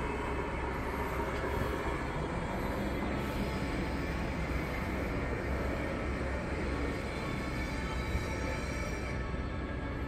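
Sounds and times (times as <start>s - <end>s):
low rumbling background noise: 0.0s - 10.0s.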